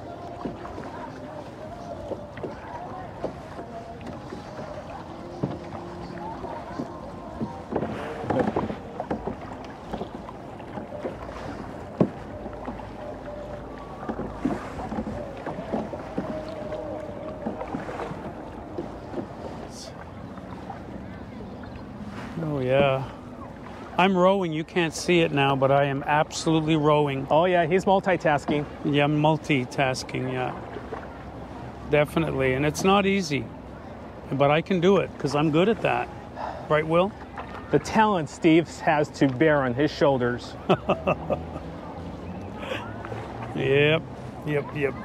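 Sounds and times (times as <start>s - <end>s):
paddles dipping into water: 0.0s - 45.0s
sharp water splashes: 0.0s - 45.0s
man speaking: 43.6s - 45.0s.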